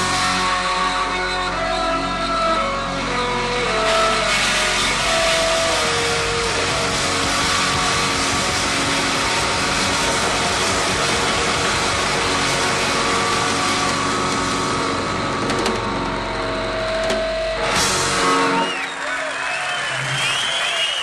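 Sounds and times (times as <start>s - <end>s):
distorted electric guitar: 0.0s - 19.0s
live heavy rock band: 0.0s - 19.0s.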